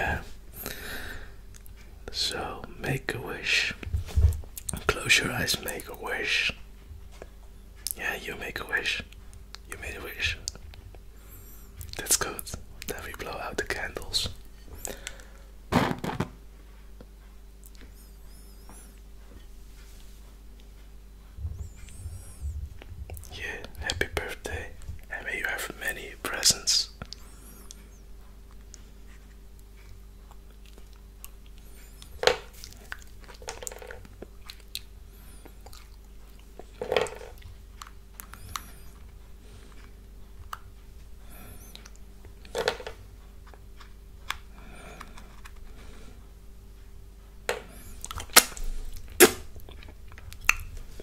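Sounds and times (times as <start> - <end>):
faint steady hum: 0.0 - 51.0.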